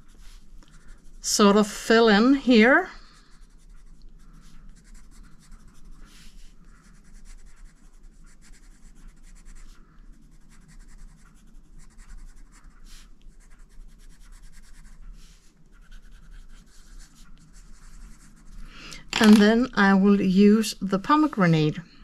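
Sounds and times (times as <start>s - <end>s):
coloured pencil scratching on paper: 0.0s - 18.7s, 20.4s - 21.6s.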